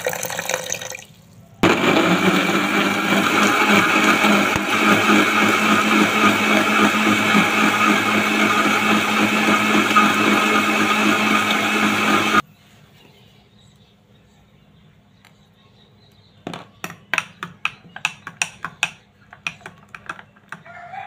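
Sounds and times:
blender running: 1.6s - 12.4s.

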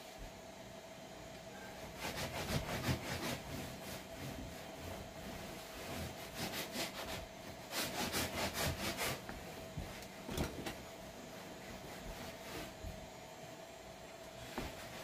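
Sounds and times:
cloth rag wiping wood: 1.8s - 10.0s, 11.1s - 13.0s.

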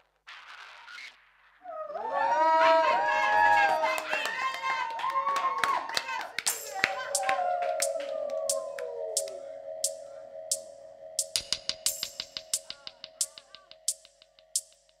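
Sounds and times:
hand claps: 3.6s - 9.4s
sharp strikes: 6.5s - 8.6s, 9.2s - 15.0s
voice-like sound rising and falling: 6.5s - 11.4s
held tone with falling glide: 6.5s - 13.2s.

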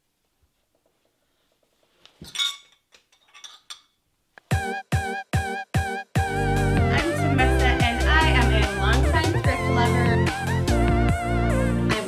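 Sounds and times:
ceramic pieces clinking on tableware: 2.2s - 4.0s.

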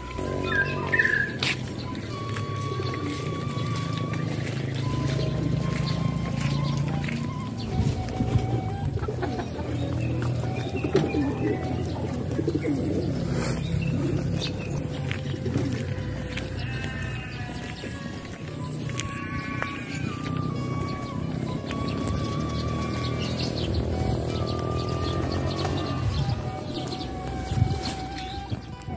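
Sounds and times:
background music: 0.0s - 28.9s
birds calling: 0.0s - 28.9s.

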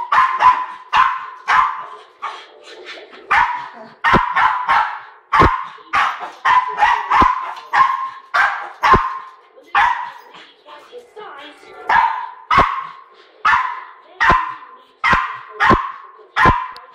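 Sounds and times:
small dog barking: 0.0s - 2.0s, 3.3s - 10.2s, 11.9s - 16.9s.

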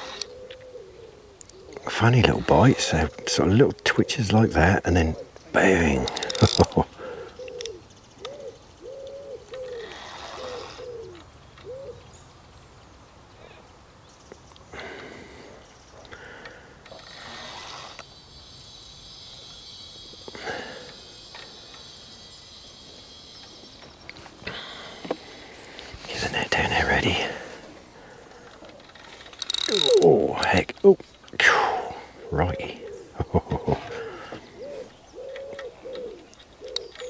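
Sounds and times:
bird cooing: 0.0s - 12.2s, 19.4s - 37.0s.

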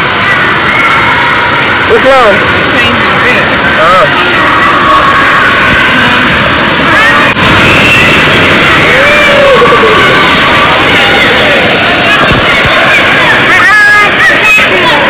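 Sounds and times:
rush of water and air: 0.0s - 15.0s.

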